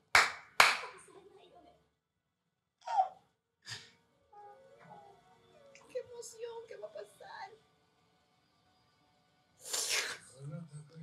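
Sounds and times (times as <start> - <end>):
sharp hand claps: 0.0 - 1.0.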